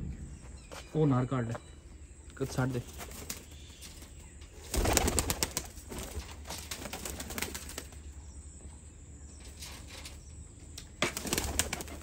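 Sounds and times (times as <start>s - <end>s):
pigeon wings flapping: 4.7s - 8.0s, 11.0s - 12.0s.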